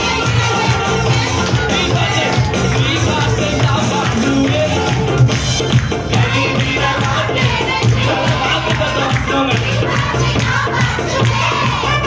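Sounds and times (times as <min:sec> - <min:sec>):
congregation singing along: 0:00.0 - 0:05.3, 0:06.0 - 0:12.0
backing music with steady beat: 0:00.0 - 0:12.0
man singing into a microphone: 0:01.7 - 0:05.2, 0:08.0 - 0:09.8.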